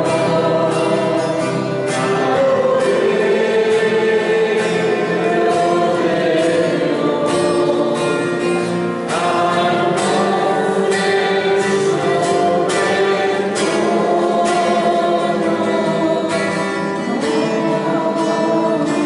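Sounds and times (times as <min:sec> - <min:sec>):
choir singing with instruments: 0:00.0 - 0:19.0.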